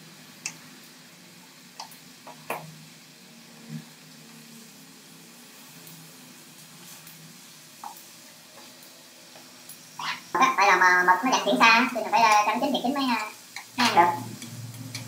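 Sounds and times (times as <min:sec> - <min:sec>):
food sizzling on hot plate: 0:00.0 - 0:15.0.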